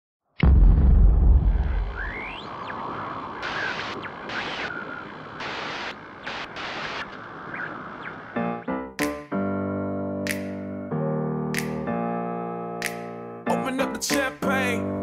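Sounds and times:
deep boom: 0:00.4 - 0:02.5.

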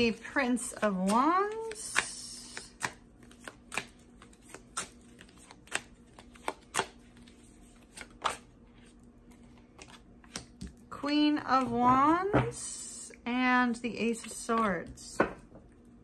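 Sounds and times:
cards shuffling: 0:00.6 - 0:10.6.

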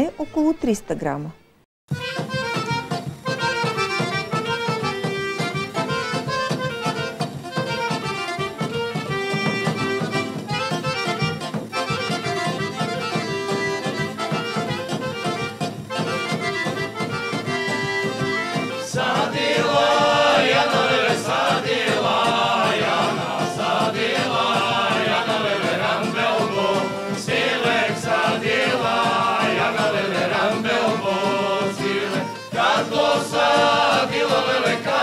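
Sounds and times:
accordion: 0:00.0 - 0:35.0
clarinet: 0:01.9 - 0:21.0
steady drum beat: 0:01.9 - 0:35.0
men singing together: 0:18.5 - 0:35.0.

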